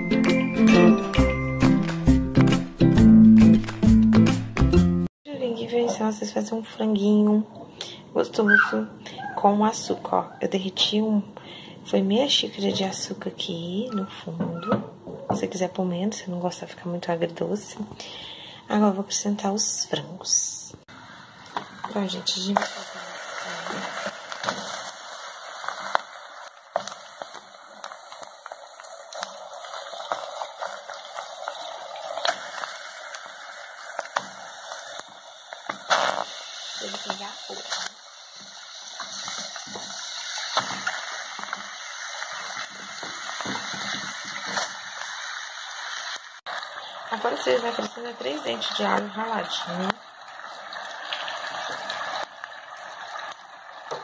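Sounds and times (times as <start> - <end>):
chicken sizzling in hot sugar: 20.9 - 54.0.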